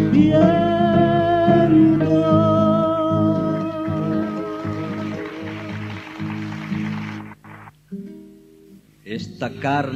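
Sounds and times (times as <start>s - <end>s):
acoustic guitar chords: 0.0s - 9.9s.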